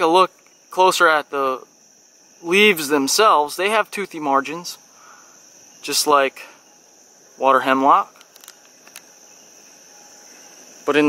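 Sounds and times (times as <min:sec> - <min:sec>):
insects trilling: 0:00.0 - 0:11.0.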